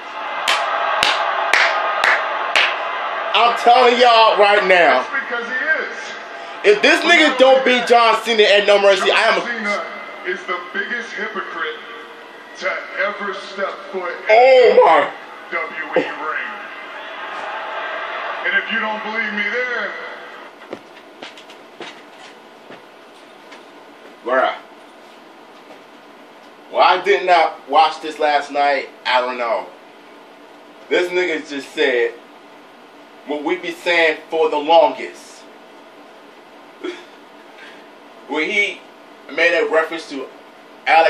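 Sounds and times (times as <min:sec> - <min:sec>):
man clapping hands: 0:00.4 - 0:02.8.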